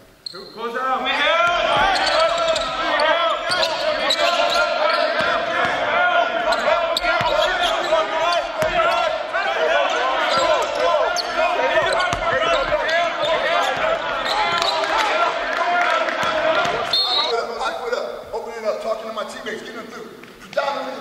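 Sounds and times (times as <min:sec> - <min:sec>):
sneakers squeaking on wooden floor: 0:01.3 - 0:15.4
basketball bouncing: 0:01.4 - 0:05.9, 0:06.5 - 0:09.1, 0:10.2 - 0:15.1.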